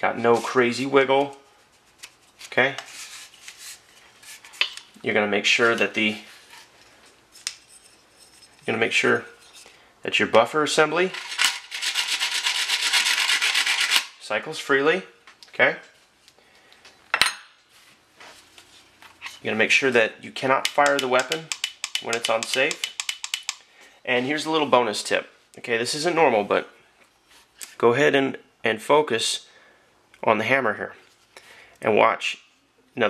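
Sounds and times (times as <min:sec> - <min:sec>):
rubbing and scraping handling noise: 0:00.0 - 0:09.8, 0:10.8 - 0:14.3, 0:17.7 - 0:24.9.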